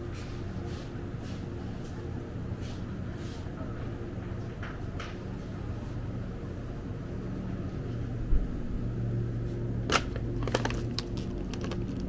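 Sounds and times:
refrigerator hum: 0.0 - 12.0.

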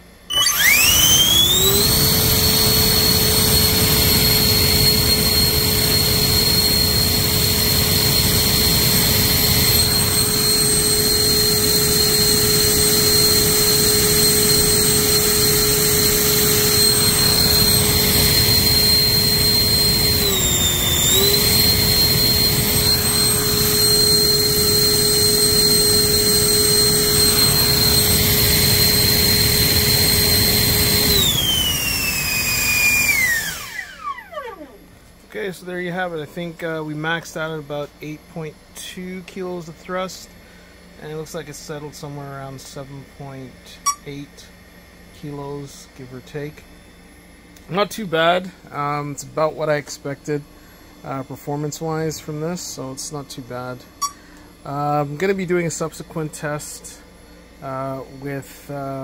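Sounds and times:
electric ducted fan whine: 0.0 - 59.0.

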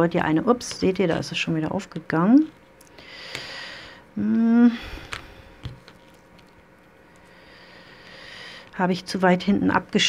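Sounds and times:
fingers handling thread: 5.0 - 7.3.

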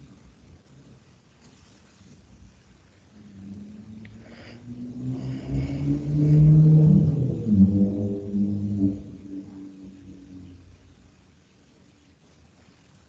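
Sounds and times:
engine humming: 2.9 - 12.1.

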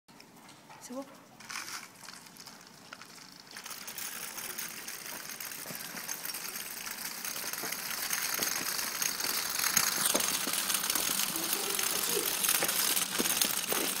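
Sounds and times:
small electric motor and gearing: 1.4 - 14.0
wheels rolling on gritty concrete: 1.4 - 14.0
small clicks: 1.6 - 14.0.

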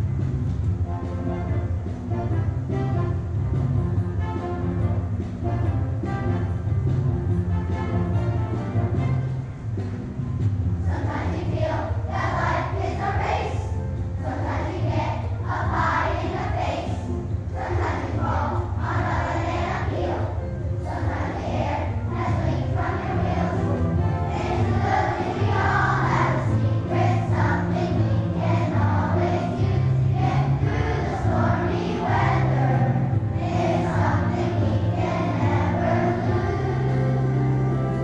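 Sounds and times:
instrumental accompaniment: 0.0 - 38.0
children's choir singing: 10.8 - 38.0.

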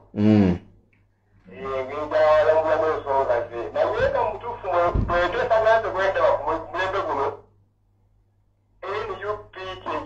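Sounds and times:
person's voice: 1.5 - 7.4, 8.8 - 10.0.

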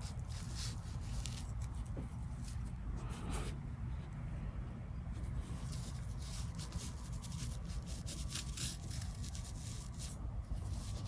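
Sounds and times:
brush scratching across paper: 0.0 - 3.6, 5.3 - 11.0
low steady hum: 0.0 - 11.0.

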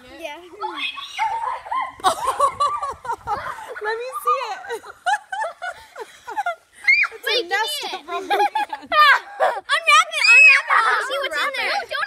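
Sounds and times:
children squealing and laughing: 0.4 - 12.0.

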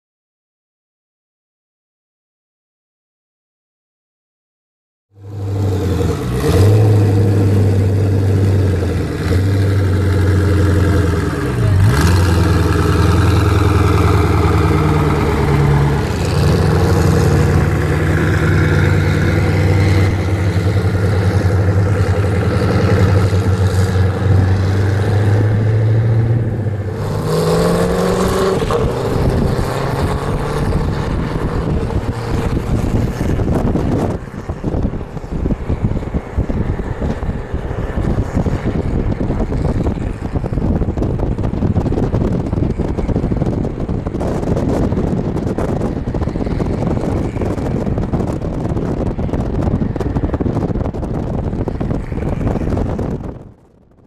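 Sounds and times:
car engine revving: 5.2 - 53.4.

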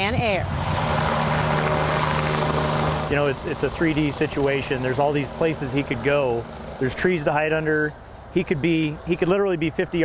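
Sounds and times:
low hum: 0.0 - 8.4
helicopter rotor and engine whir: 0.0 - 9.0.

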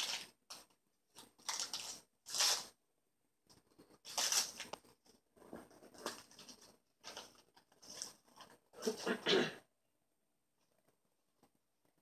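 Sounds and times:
paper rustling and crinkling: 3.5 - 9.0.

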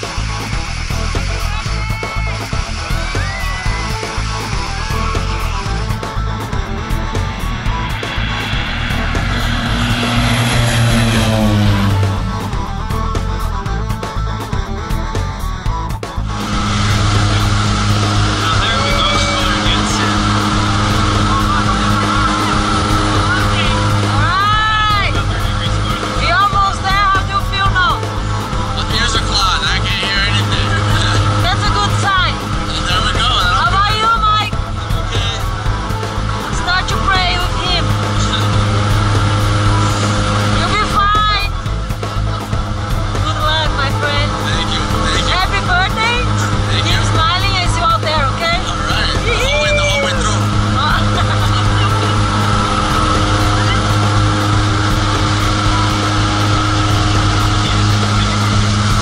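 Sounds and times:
voices calling out: 0.0 - 14.6, 16.3 - 59.0
plane engines droning: 0.0 - 59.0.

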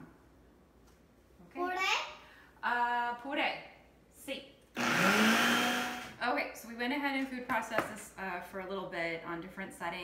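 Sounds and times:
food processor motor whine: 4.8 - 6.2.

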